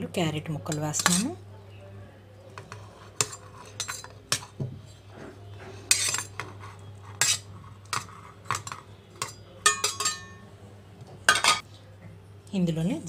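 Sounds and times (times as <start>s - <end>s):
utensil clinking on steel pan: 0.7s - 1.4s, 2.6s - 4.6s, 5.9s - 6.5s, 7.2s - 10.5s
utensil scraping into steel jar: 2.6s - 4.5s, 5.9s - 8.4s.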